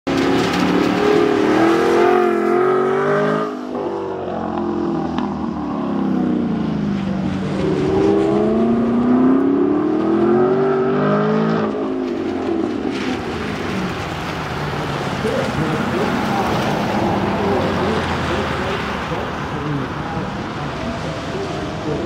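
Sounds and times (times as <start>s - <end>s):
car engine revving: 0.1s - 22.0s.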